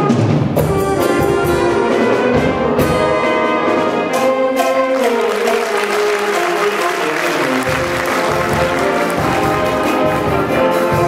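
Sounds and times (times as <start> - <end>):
jazz ensemble horn chords: 0.0 - 11.0
audience applause: 4.9 - 10.3.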